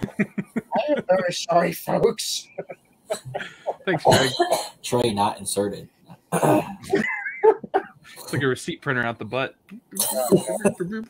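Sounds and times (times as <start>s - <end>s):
man coughing: 3.1s - 5.0s, 6.3s - 7.1s, 7.7s - 8.5s, 10.0s - 10.9s.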